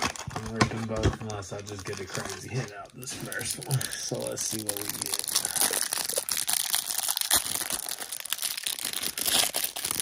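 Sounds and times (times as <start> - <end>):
plastic wrapping crinkling and tearing: 0.0 - 10.0.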